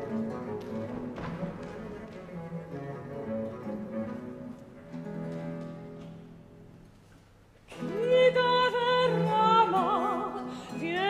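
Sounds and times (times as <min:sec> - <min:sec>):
low continuo strings: 0:00.0 - 0:10.8
opera singer with vibrato: 0:07.7 - 0:11.0.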